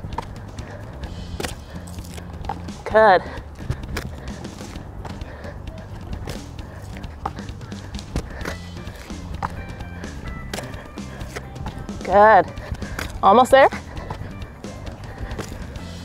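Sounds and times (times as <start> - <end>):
feet thudding on exercise mat: 0.0 - 15.8
background music with bass line: 0.0 - 16.0.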